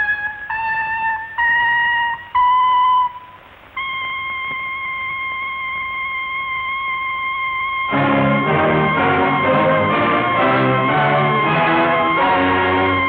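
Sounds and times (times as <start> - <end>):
solo trumpet notes: 7.4 - 13.0.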